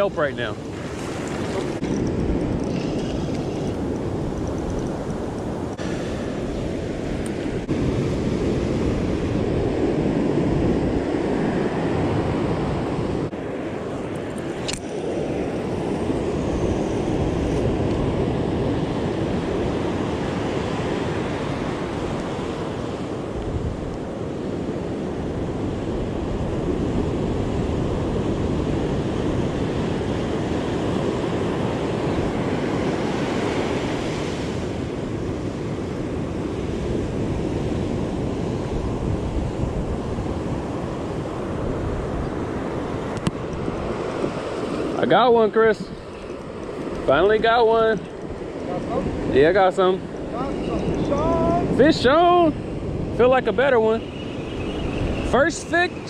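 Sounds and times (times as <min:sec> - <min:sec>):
ocean surf breaking on beach: 0:00.0 - 0:56.0
wind buffeting microphone: 0:00.0 - 0:56.0.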